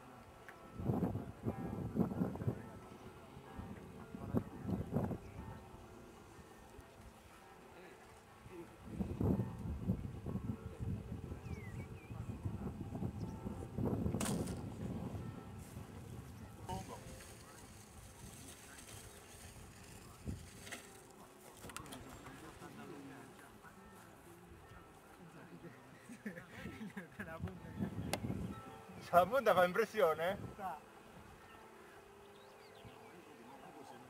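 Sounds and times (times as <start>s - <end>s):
faint voices talking: 0.0s - 34.0s.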